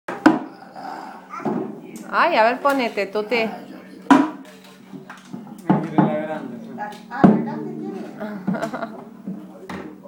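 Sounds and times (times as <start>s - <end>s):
sharp knock: 5.3s - 9.8s.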